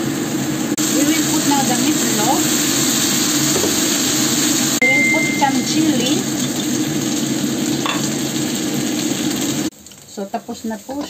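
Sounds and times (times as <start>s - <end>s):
food sizzling in a wok: 0.0s - 11.0s.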